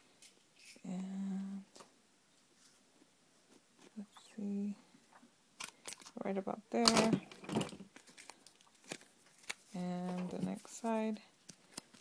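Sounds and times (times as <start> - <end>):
paper rustling and crinkling: 7.0 - 12.0.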